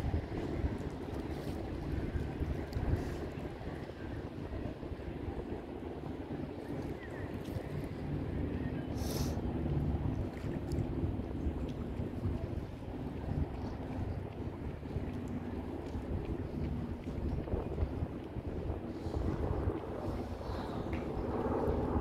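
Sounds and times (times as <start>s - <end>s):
wind rumbling on microphone: 0.0s - 22.0s.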